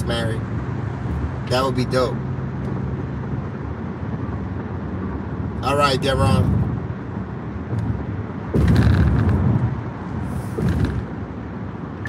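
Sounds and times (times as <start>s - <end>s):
car engine and tyre hum: 0.0s - 12.0s.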